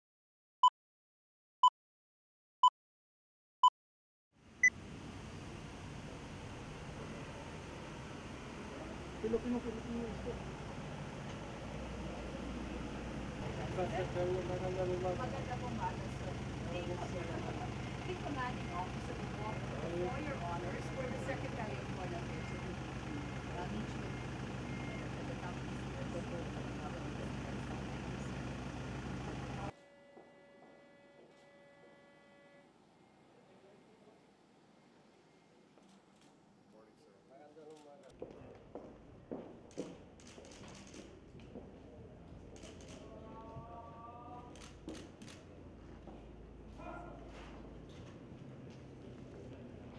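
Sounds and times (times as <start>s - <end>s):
vehicle engine idling: 4.8s - 29.7s
murmur of people talking: 8.6s - 10.5s, 13.4s - 28.5s.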